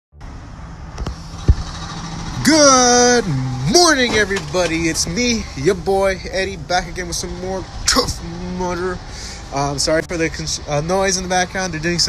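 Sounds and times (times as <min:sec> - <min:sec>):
construction work rumble: 0:00.2 - 0:12.0.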